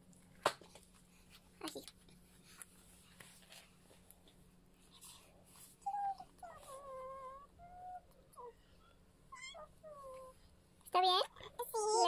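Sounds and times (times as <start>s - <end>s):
small child humming: 5.8s - 8.6s, 9.3s - 10.4s.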